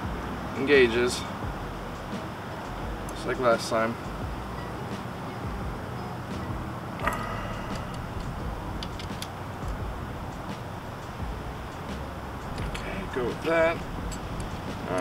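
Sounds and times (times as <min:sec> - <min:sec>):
low background noise: 0:00.0 - 0:15.0
hand tool metallic clicks: 0:07.0 - 0:12.8.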